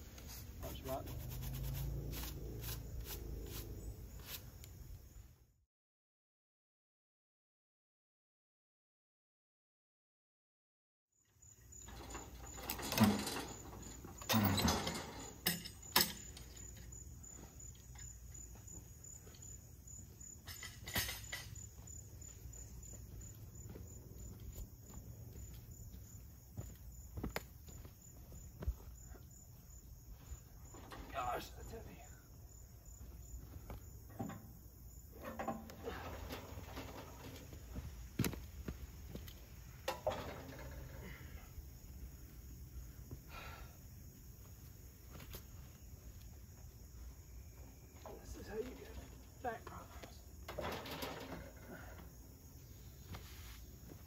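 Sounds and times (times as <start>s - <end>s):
insects chirring: 0.0s - 5.6s, 11.2s - 54.0s
handling knocks and rustles: 35.2s - 41.2s, 50.4s - 52.0s.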